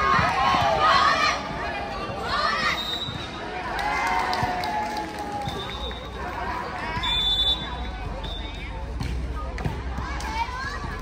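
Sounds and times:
spectators chatting and shouting: 0:00.0 - 0:11.0.

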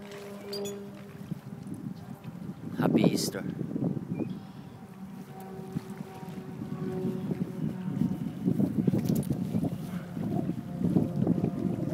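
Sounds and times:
wind rumbling on microphone: 0:00.0 - 0:11.9.

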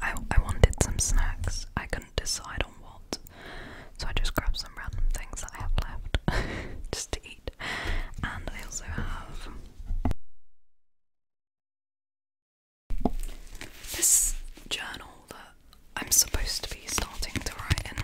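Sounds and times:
woman whispering: 0:00.0 - 0:03.3, 0:04.0 - 0:06.2, 0:06.9 - 0:09.6, 0:13.9 - 0:18.0.

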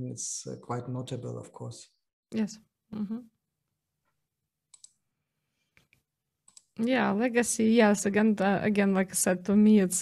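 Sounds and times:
computer clicks: 0:04.7 - 0:05.0, 0:05.8 - 0:06.8.

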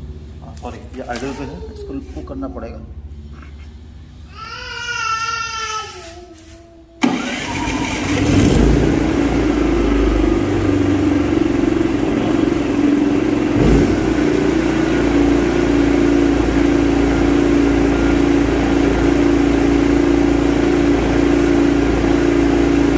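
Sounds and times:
generator engine starting and running: 0:00.0 - 0:04.3, 0:07.0 - 0:22.9.

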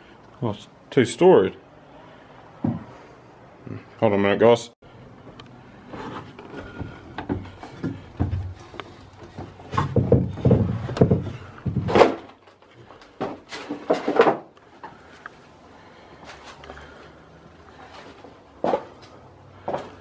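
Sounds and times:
footsteps on timber: 0:02.6 - 0:03.0, 0:05.2 - 0:14.9, 0:17.8 - 0:20.0.

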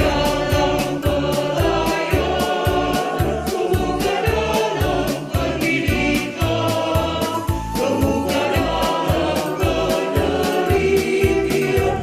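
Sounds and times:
choir singing: 0:00.0 - 0:12.0
instrumental backing with beat: 0:00.0 - 0:12.0.

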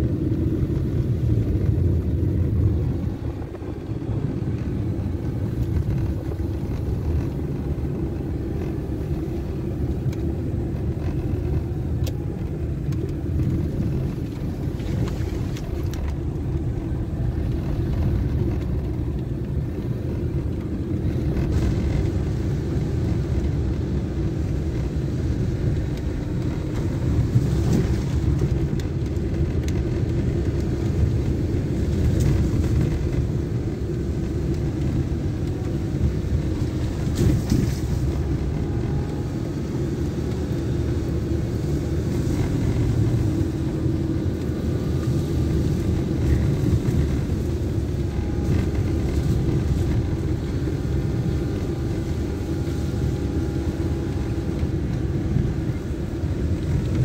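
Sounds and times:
car engine and tyre rumble: 0:00.0 - 0:57.0.

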